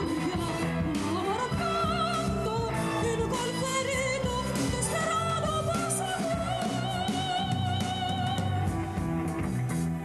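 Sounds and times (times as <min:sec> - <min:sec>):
woman singing: 0:00.0 - 0:09.0
bass guitar: 0:00.0 - 0:10.0
drums: 0:00.0 - 0:10.0.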